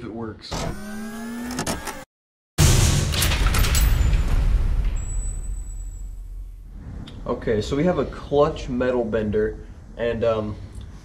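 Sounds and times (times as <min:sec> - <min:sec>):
deep hit: 0:02.6 - 0:08.0.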